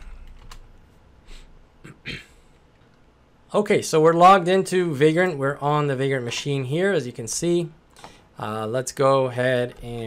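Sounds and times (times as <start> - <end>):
soft breaths: 0.0 - 1.6, 7.9 - 8.4.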